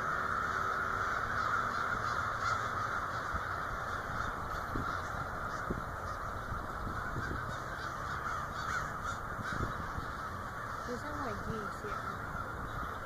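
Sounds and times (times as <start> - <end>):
flock of crows cawing: 0.0 - 13.0.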